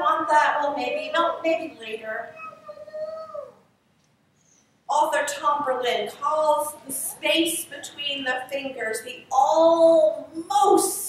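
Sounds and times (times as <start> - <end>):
woman speaking: 0.0 - 2.3, 4.9 - 11.0.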